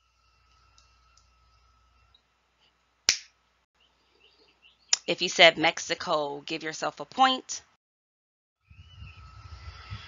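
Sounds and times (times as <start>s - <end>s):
finger snap: 3.1s - 3.3s.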